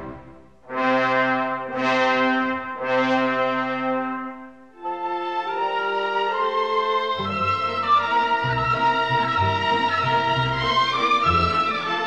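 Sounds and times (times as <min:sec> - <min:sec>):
orchestral brass chords: 0:00.0 - 0:12.0.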